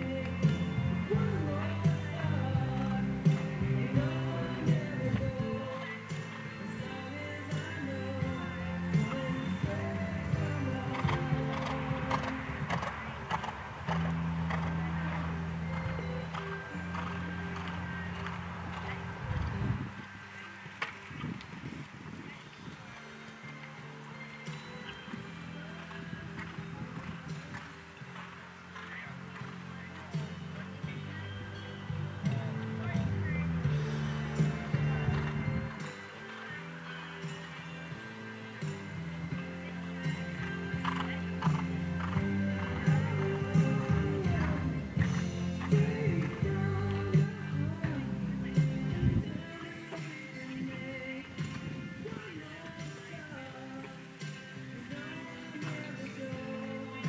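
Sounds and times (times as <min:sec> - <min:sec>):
horse hoofbeats on sand: 0:00.0 - 0:20.0, 0:40.2 - 0:48.0
background music: 0:00.0 - 0:57.0.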